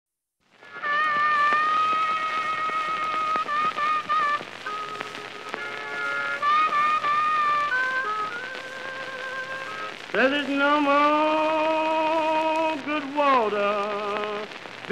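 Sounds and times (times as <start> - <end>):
record hiss and crackle: 0.4 - 14.9
blues harmonica playing: 0.6 - 10.0.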